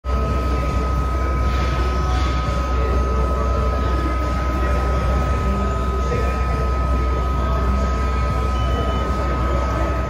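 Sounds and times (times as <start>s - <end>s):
constant high whine: 0.0s - 10.0s
machine low rumble: 0.1s - 10.0s.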